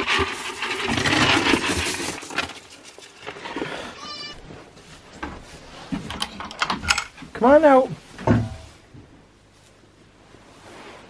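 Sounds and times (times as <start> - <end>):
goat bleat: 3.9 - 4.4.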